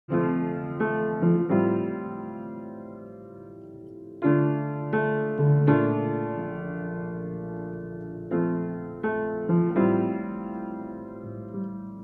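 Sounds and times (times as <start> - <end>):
slow piano music: 0.1 - 12.0.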